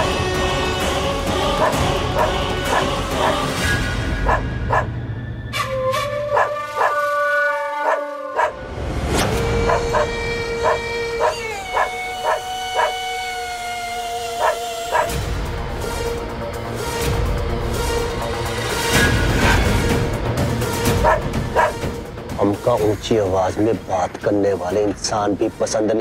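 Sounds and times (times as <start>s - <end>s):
dramatic background music: 0.0s - 26.0s
dog barking: 1.6s - 3.4s, 4.2s - 4.9s, 6.3s - 7.0s, 7.8s - 8.6s, 9.7s - 13.0s, 14.4s - 15.1s, 21.0s - 21.8s.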